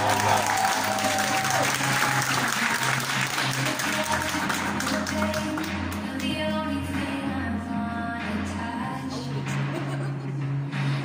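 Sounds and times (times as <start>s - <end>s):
audience applauding: 0.0s - 5.7s
music: 0.0s - 11.0s.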